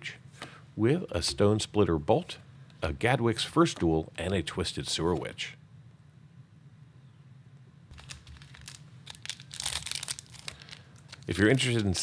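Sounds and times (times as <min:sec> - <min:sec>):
foil wrapper crinkling: 0:07.9 - 0:12.0.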